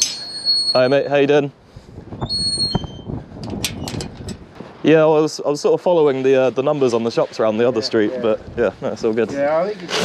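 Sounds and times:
brief high squeak: 2.2 - 3.1.

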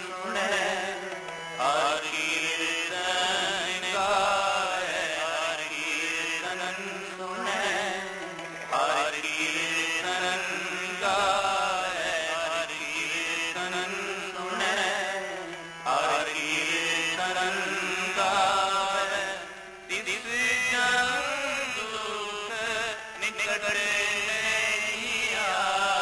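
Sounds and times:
harmonium drone: 0.0 - 26.0
man singing ornamented phrases: 0.0 - 26.0
tabla: 0.0 - 26.0.

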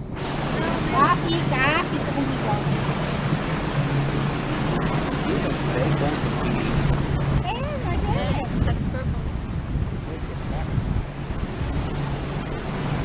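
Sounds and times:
boat motor running: 0.0 - 13.0
water rushing: 0.0 - 13.0
wind on microphone: 0.0 - 13.0.

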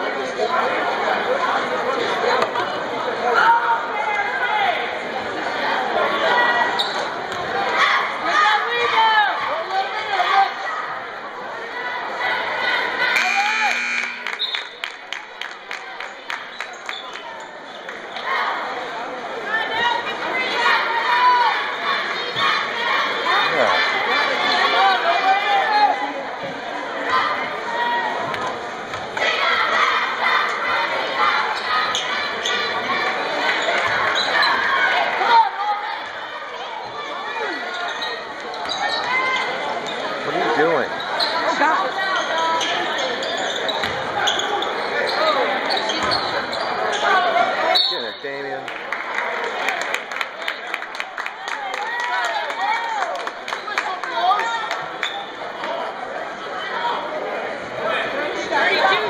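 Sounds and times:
crowd shouting and talking: 0.0 - 59.0.

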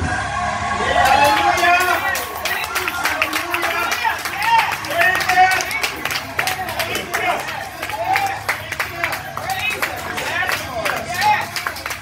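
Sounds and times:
congregation voices calling out: 0.8 - 12.0
hand claps: 1.0 - 12.0.

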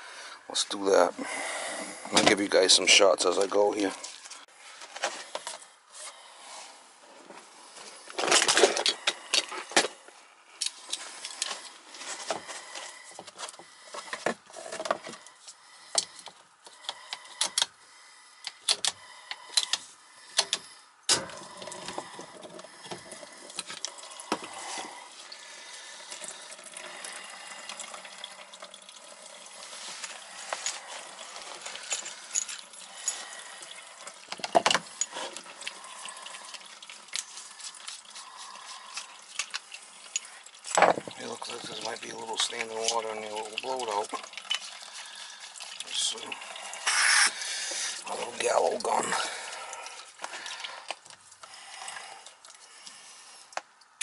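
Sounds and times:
water pouring into plastic pan: 21.2 - 31.9, 32.7 - 51.1.

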